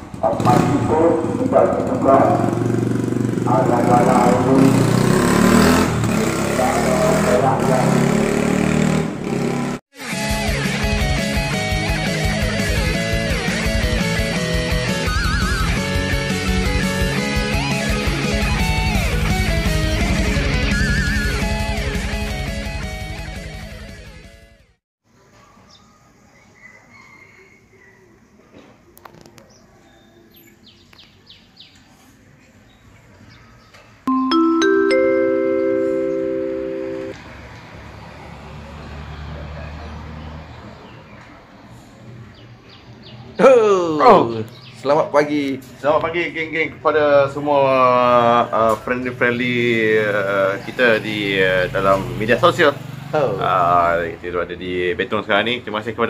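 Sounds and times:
low street rumble: 0.0s - 9.8s
motorcycle engine passing: 0.0s - 9.8s, 18.6s - 22.7s, 49.5s - 54.8s
mallet chime chord ringing: 34.1s - 37.2s.

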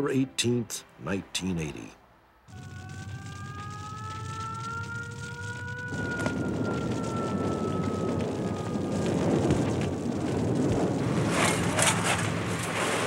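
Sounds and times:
fire crackling: 2.4s - 13.0s
fire engine siren: 2.5s - 11.6s
fire roaring: 2.5s - 13.0s.

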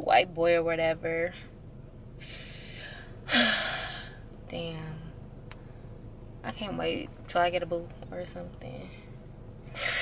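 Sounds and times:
woman sighing: 2.4s - 4.1s.

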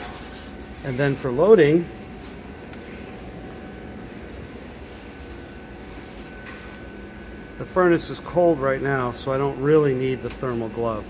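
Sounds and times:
faint high hum: 0.0s - 11.0s
ventilation hiss: 0.0s - 11.0s.

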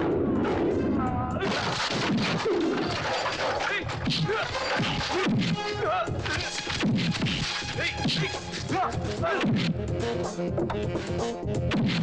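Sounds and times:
men shouting and grunting: 3.6s - 6.6s, 7.2s - 9.6s.

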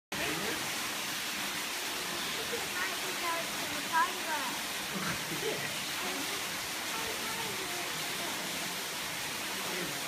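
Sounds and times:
rushing hiss: 0.2s - 10.0s
people talking: 2.2s - 8.5s.

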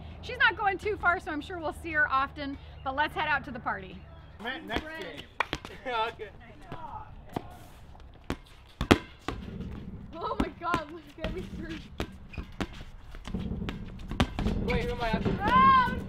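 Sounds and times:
voices: 0.3s - 7.9s, 10.2s - 11.9s, 14.6s - 16.0s.

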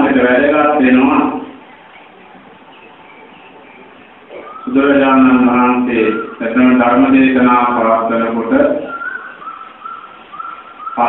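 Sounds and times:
high whistling tone: 8.8s - 11.0s.

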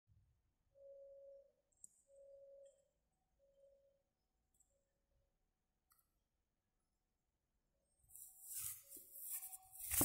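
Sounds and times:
faint warning tone beeping: 0.5s - 5.3s.

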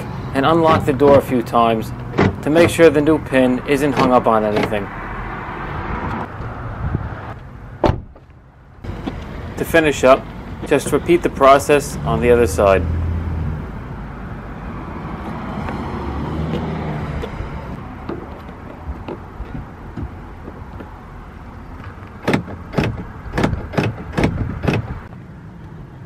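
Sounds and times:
car door lock clicking: 2.0s - 3.0s, 3.8s - 4.8s, 21.8s - 25.1s.

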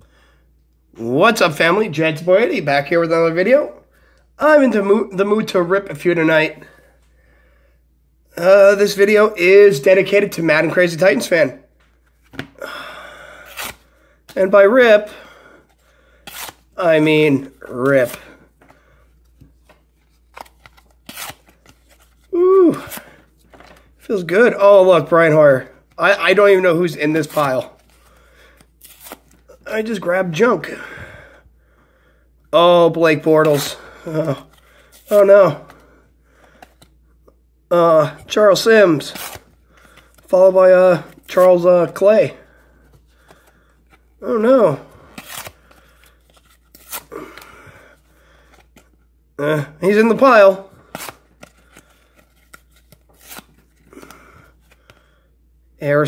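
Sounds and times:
card rustling: 15.7s - 30.0s, 33.1s - 37.0s, 38.2s - 49.0s, 49.8s - 55.0s
cardboard cards ripping: 16.2s - 16.7s, 17.4s - 18.3s, 19.5s - 23.8s, 27.2s - 29.6s, 39.0s - 40.3s, 45.0s - 47.5s, 50.8s - 54.8s
trading cards clicking and rustling: 17.8s - 24.0s, 50.9s - 55.0s.

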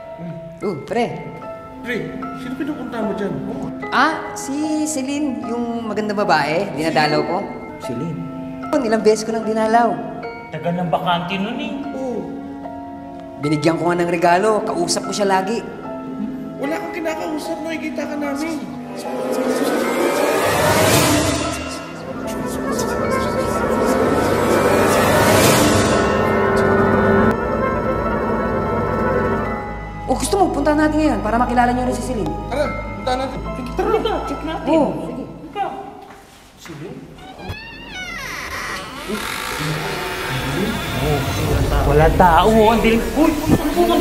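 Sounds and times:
background music: 0.0s - 44.0s
suspense sound: 19.2s - 30.2s, 39.0s - 44.0s
door creaking open: 37.2s - 43.8s
deep rumble: 39.6s - 44.0s.

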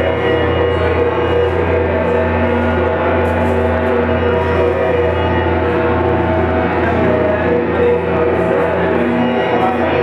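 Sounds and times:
electric guitar ambient drone: 0.0s - 10.0s.

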